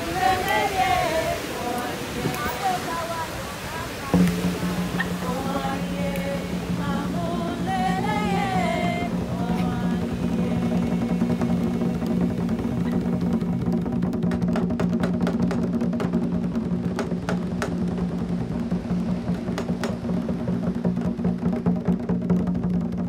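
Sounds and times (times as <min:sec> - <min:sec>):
person singing: 0:00.0 - 0:04.3, 0:05.0 - 0:11.4
drum ensemble rhythm: 0:00.0 - 0:23.0
sharp drum strikes: 0:04.1 - 0:23.0.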